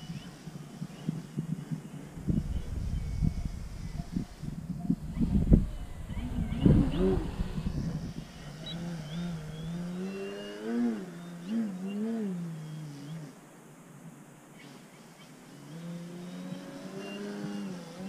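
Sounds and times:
wind buffeting microphone: 0.0s - 10.1s
model plane motor humming: 0.0s - 13.4s, 15.2s - 18.0s.

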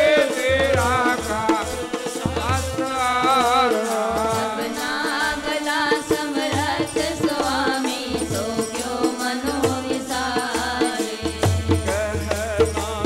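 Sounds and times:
harmonium: 0.0s - 13.0s
hymn singing: 0.0s - 13.0s
tabla rhythm: 0.0s - 13.0s.

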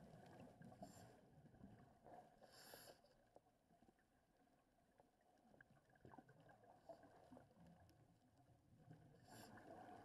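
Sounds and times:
underwater bubbles: 0.0s - 2.4s, 3.7s - 10.0s.

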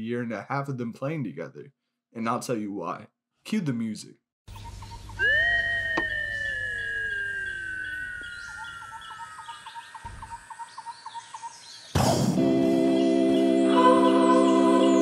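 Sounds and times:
downward gliding tone: 5.2s - 10.3s, 12.4s - 15.0s
music with sustained chord: 12.4s - 15.0s.

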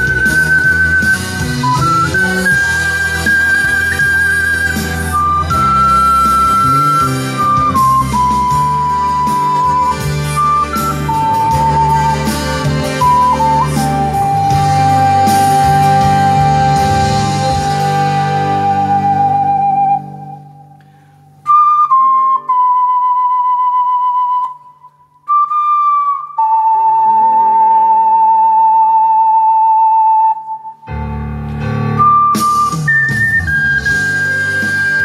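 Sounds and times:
musical accompaniment: 0.0s - 35.0s
ocarina slow melody: 0.0s - 35.0s.

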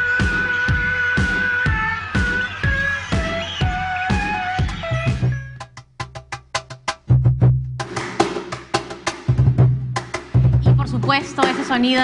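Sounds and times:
cajon slaps and bass tones: 1.7s - 12.0s.

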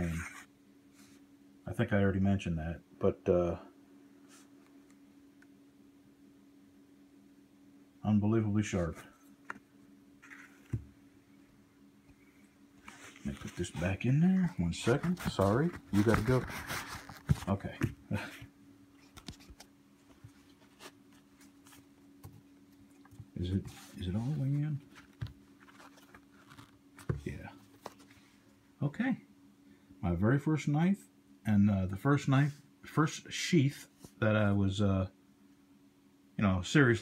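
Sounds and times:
faint steady hum: 0.0s - 37.0s.

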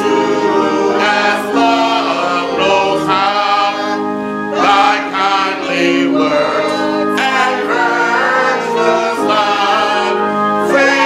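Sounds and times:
congregation and choir singing hymn: 0.0s - 11.0s.

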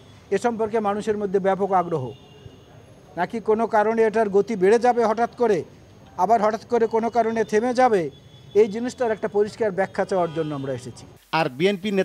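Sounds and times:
man speaking: 3.2s - 12.0s.

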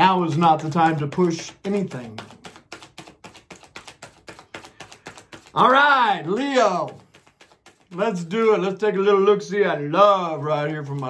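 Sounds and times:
cards being shuffled: 0.0s - 9.0s, 10.2s - 11.0s.

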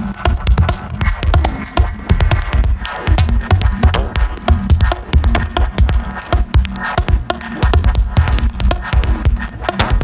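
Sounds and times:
electronic techno music: 0.0s - 10.0s.

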